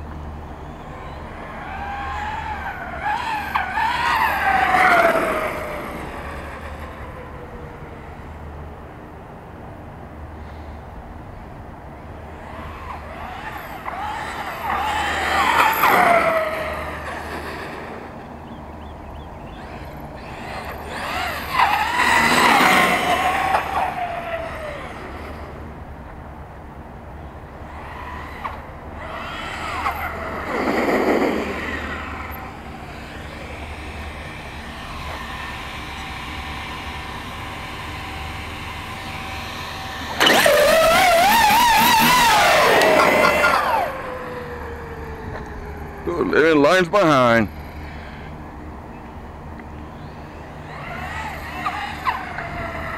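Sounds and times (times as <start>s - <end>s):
electric motor whining: 0.5s - 8.2s, 12.2s - 18.2s, 19.2s - 25.8s, 27.2s - 52.9s.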